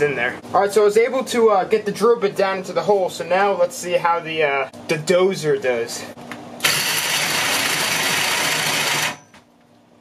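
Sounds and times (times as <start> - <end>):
drill hole saw cutting metal pipe: 6.6 - 9.2.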